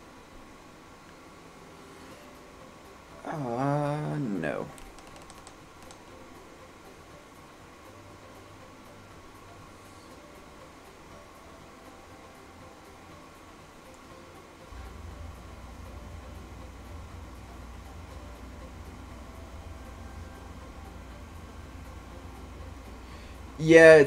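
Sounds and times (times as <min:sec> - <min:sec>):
faint clicks: 0:04.7 - 0:06.1.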